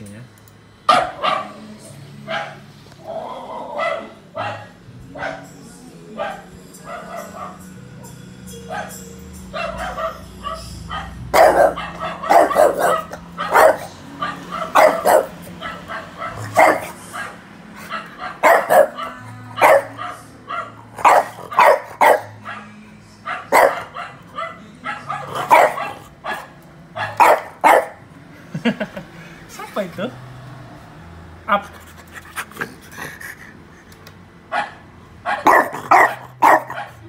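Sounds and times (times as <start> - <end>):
recorded dog barking: 0.9 - 2.7, 3.3 - 7.8, 8.7 - 28.1, 34.5 - 37.0
low music: 1.1 - 31.3.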